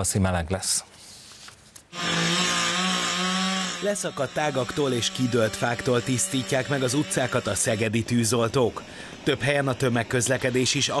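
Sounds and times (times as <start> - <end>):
chainsaw running: 1.9 - 11.0.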